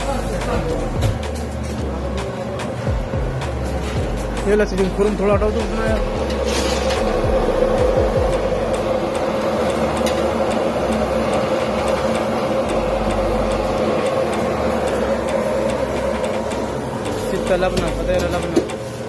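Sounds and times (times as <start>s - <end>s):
kitchen machinery hum: 0.0s - 19.0s
rushing noise: 2.6s - 18.8s.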